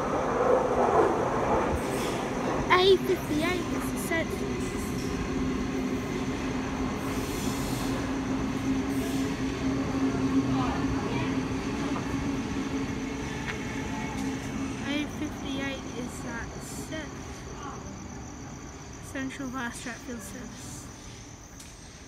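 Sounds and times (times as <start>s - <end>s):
wheel and track rumble: 0.0s - 17.6s
electric train hum: 0.0s - 22.0s.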